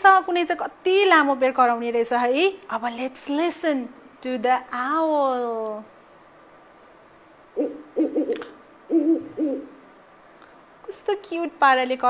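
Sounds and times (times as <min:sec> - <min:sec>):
owl hooting: 0:07.5 - 0:09.8.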